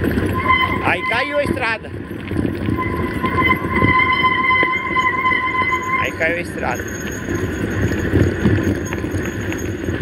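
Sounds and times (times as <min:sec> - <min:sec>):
bike tyres on dirt: 0:00.0 - 0:10.0
wind buffeting microphone: 0:00.0 - 0:10.0
steady high whine: 0:02.7 - 0:09.6.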